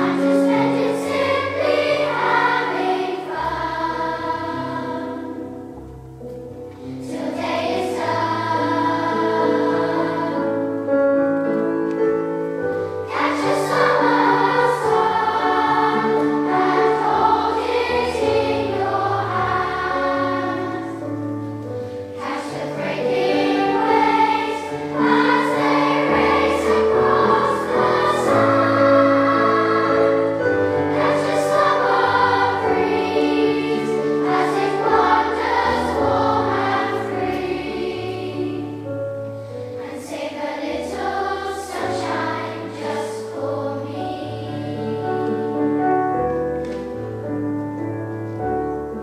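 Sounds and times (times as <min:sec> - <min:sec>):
children's choir singing: 0:00.0 - 0:05.8, 0:06.8 - 0:49.0.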